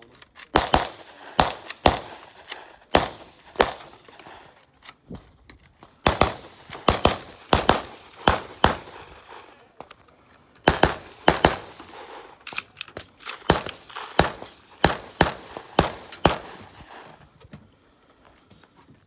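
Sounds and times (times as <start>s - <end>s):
rifle gunshots: 0.5s - 4.5s, 6.0s - 9.5s, 10.6s - 12.4s, 13.3s - 17.1s.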